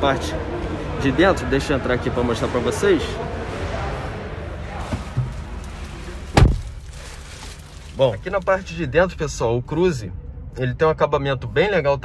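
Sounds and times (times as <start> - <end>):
car door slamming shut: 6.3 - 6.8.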